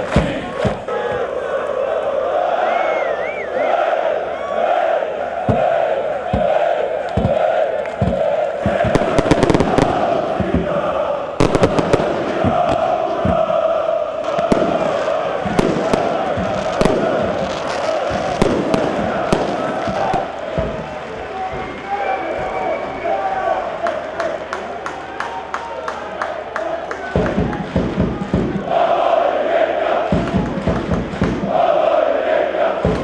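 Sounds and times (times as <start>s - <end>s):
fireworks banging: 0.0s - 1.3s, 5.4s - 23.0s, 27.0s - 31.7s, 32.4s - 33.0s
crowd chanting in unison: 0.0s - 33.0s.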